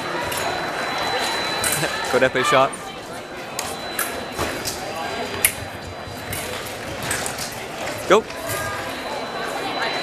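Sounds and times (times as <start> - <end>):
murmur of spectators' voices: 0.0 - 10.0.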